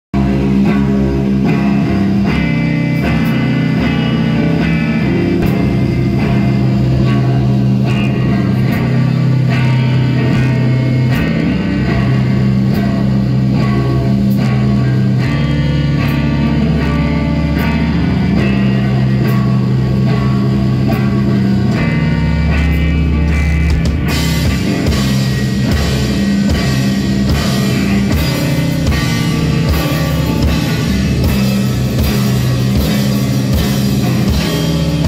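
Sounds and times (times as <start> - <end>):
bass guitar: 0.1 - 35.0
drum kit: 0.2 - 35.0
electric guitar: 0.2 - 35.0.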